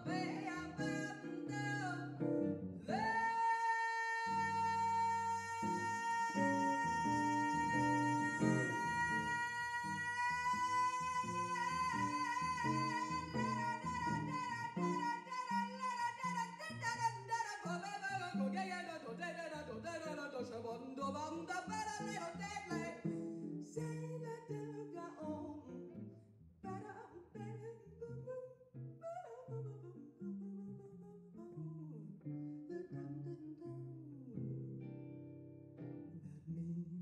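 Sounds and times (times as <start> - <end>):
guitar plucked notes and chords: 0.0 - 3.2, 4.3 - 17.3, 29.9 - 37.0.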